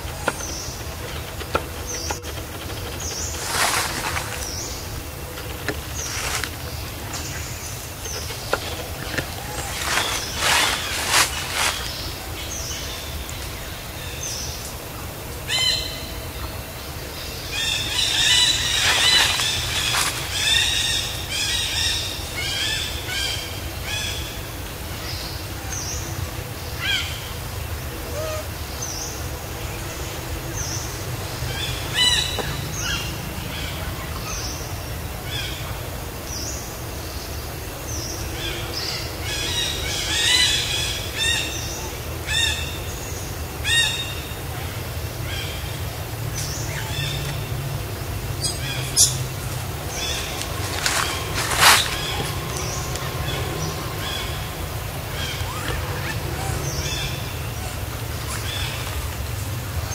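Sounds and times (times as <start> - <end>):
steady low rumble: 0.0 - 59.9.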